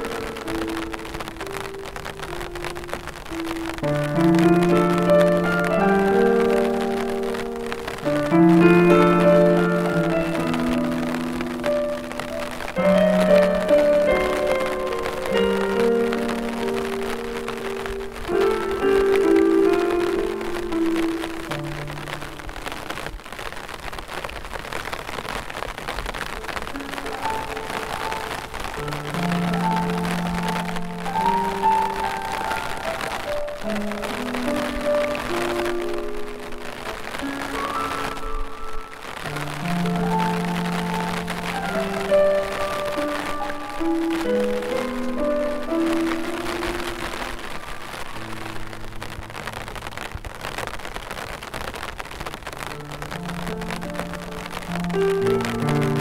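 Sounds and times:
slow solo piano: 0.0 - 23.8, 24.7 - 56.0
falling rain: 0.0 - 56.0.

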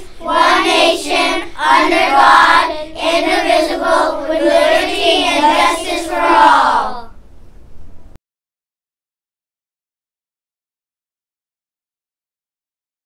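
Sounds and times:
children reciting together: 0.0 - 7.2.

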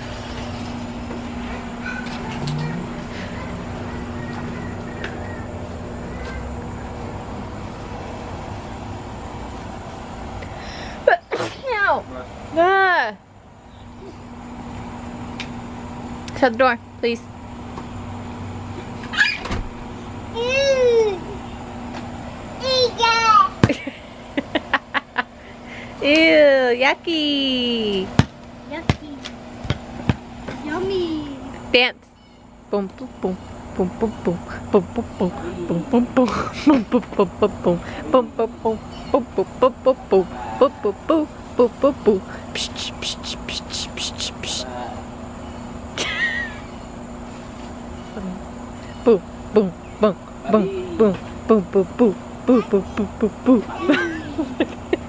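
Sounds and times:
insects droning: 0.0 - 55.0
steady low hum: 0.0 - 55.0
child squealing: 19.1 - 19.5
person chanting rhythmic syllables: 32.8 - 44.7, 49.1 - 53.8.

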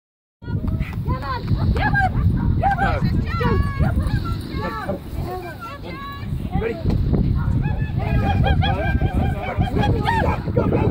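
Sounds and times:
dogs yipping: 7.4 - 10.9.

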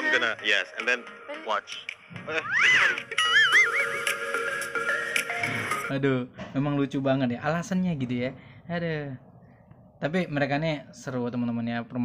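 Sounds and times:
background music: 0.0 - 6.1
horse whinnying: 2.4 - 4.0.

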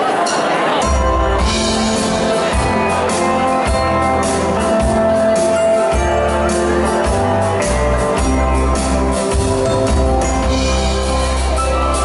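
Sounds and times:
dance band playing live: 0.0 - 12.0
drum kit beat: 0.8 - 12.0
electric guitar: 0.9 - 12.0.

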